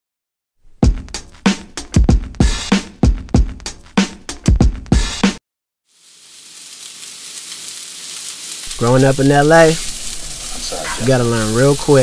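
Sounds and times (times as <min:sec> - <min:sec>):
vegetables sizzling in a skillet: 0:05.9 - 0:12.0.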